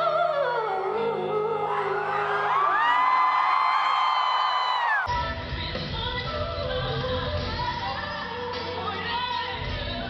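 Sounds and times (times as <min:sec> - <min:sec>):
crowd cheering and whooping: 0:01.6 - 0:05.1.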